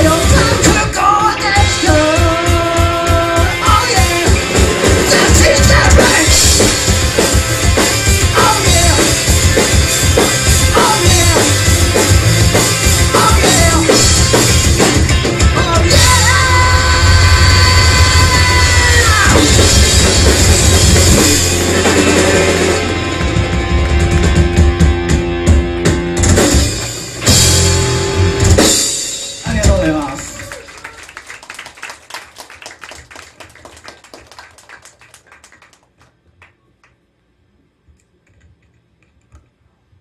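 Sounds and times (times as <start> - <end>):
drum kit with cymbals: 0.0 - 30.2
bass guitar: 0.0 - 30.9
electric guitar: 0.0 - 30.9.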